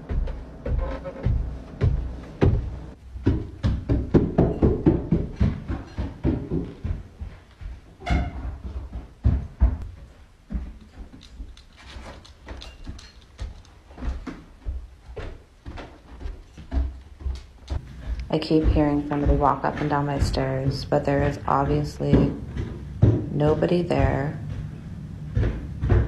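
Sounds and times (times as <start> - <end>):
footsteps on wooden stairs: 0.0 - 26.0.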